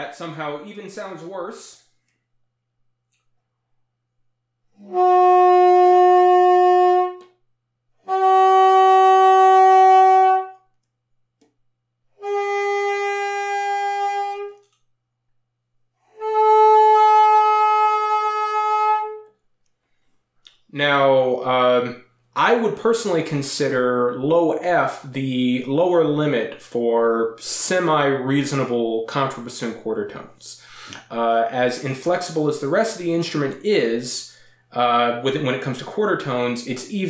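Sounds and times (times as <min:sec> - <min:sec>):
contrabassoon long held notes: 0:04.8 - 0:07.3, 0:08.1 - 0:10.6, 0:12.2 - 0:14.6, 0:16.1 - 0:19.2
player breathing: 0:30.6 - 0:31.1.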